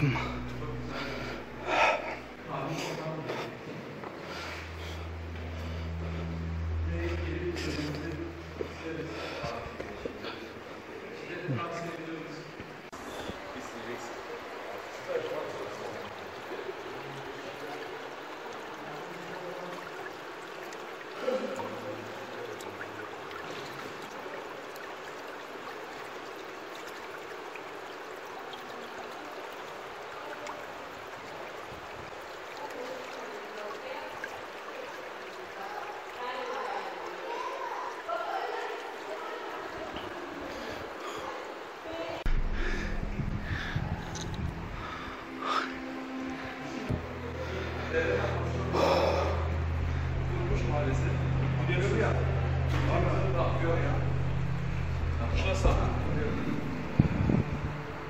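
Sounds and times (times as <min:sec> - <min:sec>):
shallow water running over stones: 0:06.9 - 0:42.3
loud low rumble and knocks: 0:42.3 - 0:44.8.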